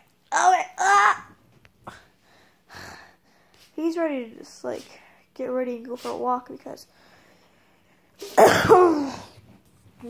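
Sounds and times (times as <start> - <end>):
woman coughing: 8.2 - 9.4.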